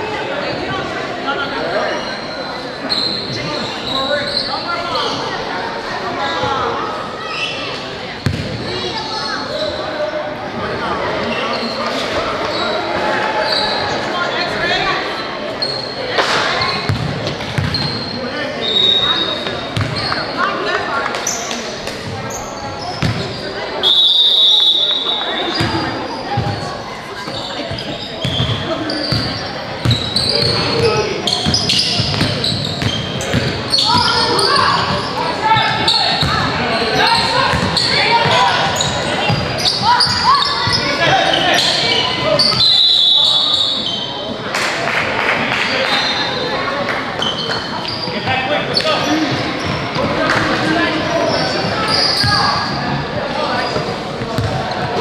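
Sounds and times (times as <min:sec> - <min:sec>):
voices calling out: 0:17.6 - 0:55.0
high whistle blowing: 0:23.8 - 0:25.4, 0:42.4 - 0:44.0
basketball dribbling on court: 0:54.3 - 0:54.6.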